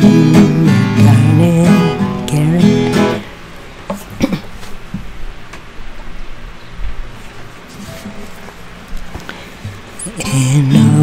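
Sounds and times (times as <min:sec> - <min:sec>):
twelve-string acoustic guitar: 0:00.0 - 0:03.4, 0:10.0 - 0:11.0
handling noise: 0:06.8 - 0:10.0.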